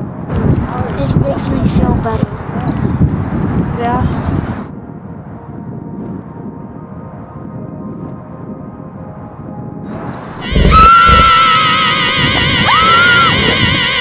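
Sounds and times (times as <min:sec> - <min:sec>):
faint steady drone: 0:04.7 - 0:14.0
shrill wavering cry: 0:10.3 - 0:14.0.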